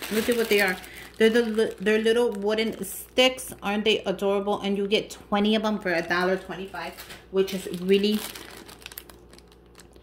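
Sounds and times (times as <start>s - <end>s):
cellophane packet crinkling: 0.0s - 3.4s, 6.2s - 10.0s.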